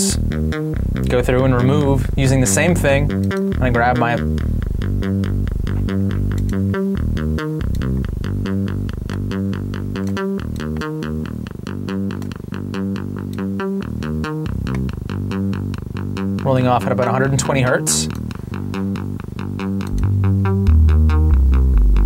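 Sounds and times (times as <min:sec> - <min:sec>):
synthesizer bass line: 0:00.0 - 0:22.0.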